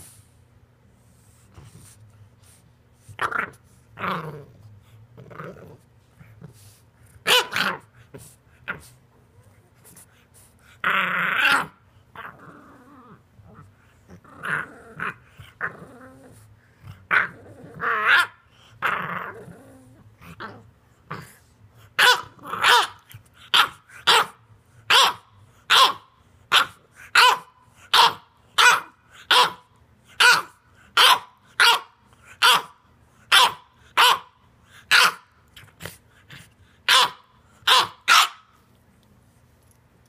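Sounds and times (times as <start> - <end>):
puppy play-growling: 1.5 - 31.0, 32.2 - 38.7
puppy barking: 7.3 - 7.7, 22.0 - 29.6, 30.2 - 34.3, 34.9 - 35.2, 36.9 - 38.5.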